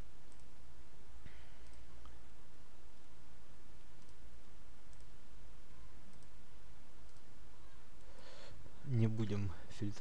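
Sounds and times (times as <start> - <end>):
steady low hum: 0.0 - 10.0
faint computer mouse clicks: 0.3 - 0.5, 1.6 - 2.2, 4.0 - 4.2, 4.9 - 5.2, 6.1 - 6.4, 7.0 - 7.3.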